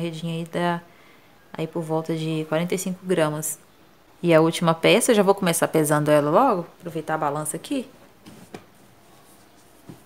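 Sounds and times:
rug handling noise: 8.0 - 10.0.

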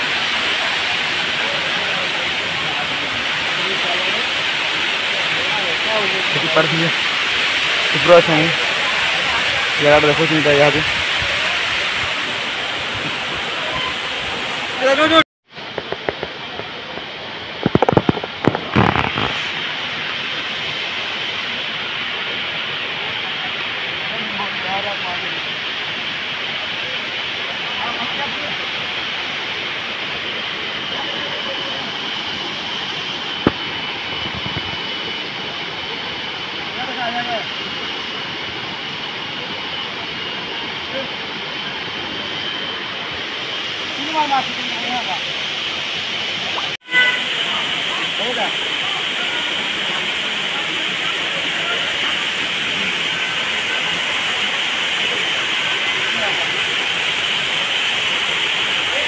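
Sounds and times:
steady outdoor hiss: 0.0 - 59.0.

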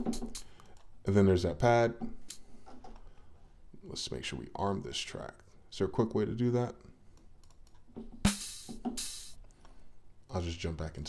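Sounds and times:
drum machine kick: 0.0 - 0.4, 8.2 - 9.4
hissy cymbal-like hits: 8.3 - 9.4.

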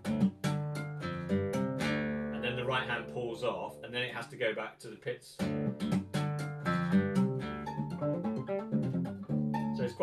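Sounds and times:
classical guitar tapping run: 5.4 - 9.8.

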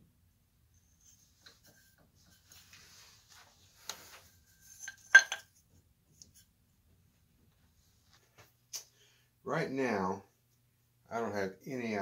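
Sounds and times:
glass clinking: 4.7 - 5.5.

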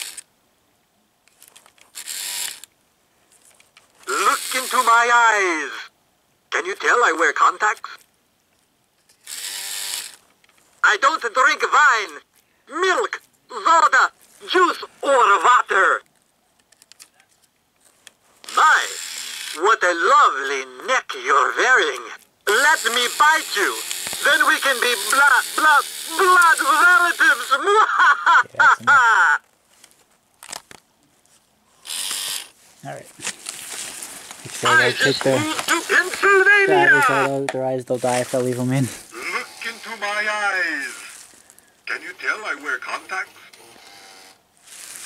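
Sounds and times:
small motor gear whir: 1.9 - 2.7, 9.2 - 10.2, 18.4 - 19.6, 22.5 - 27.6, 31.8 - 32.6, 43.4 - 45.0
person laughing: 27.4 - 29.4.

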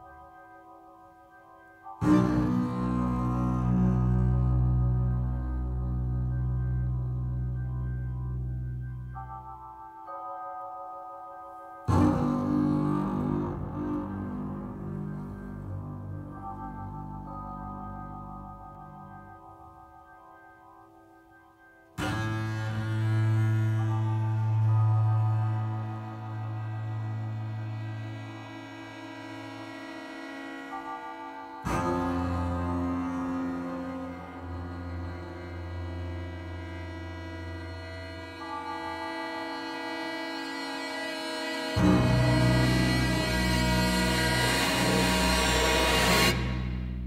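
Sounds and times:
chamber ensemble music: 0.0 - 47.0
bowed low strings: 2.0 - 9.6, 11.9 - 19.3, 22.0 - 47.0
steady low drone: 11.9 - 19.5, 22.0 - 47.0.

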